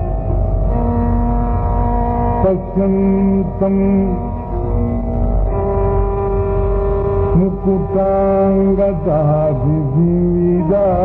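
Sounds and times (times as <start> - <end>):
person singing classical chant: 2.2 - 5.0, 7.2 - 11.0.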